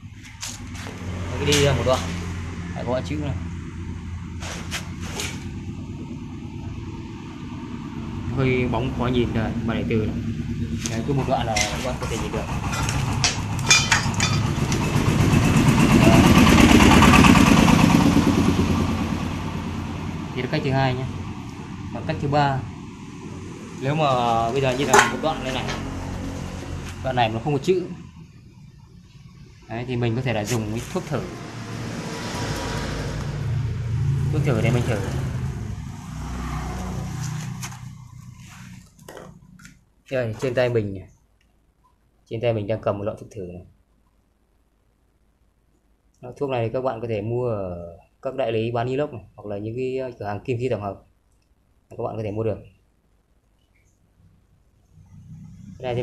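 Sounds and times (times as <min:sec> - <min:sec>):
motorcycle engine passing: 0:00.0 - 0:39.7, 0:54.9 - 0:56.0.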